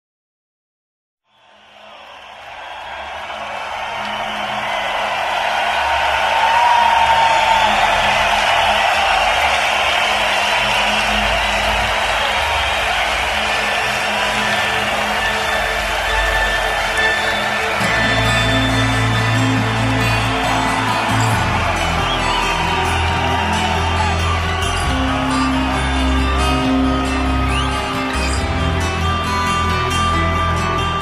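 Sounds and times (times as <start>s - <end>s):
large crowd cheering: 1.3s - 31.0s.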